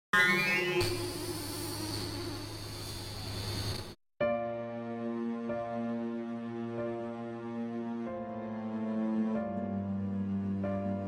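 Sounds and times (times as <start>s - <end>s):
buzzing crackling electronic shimmer: 0.2s - 4.0s.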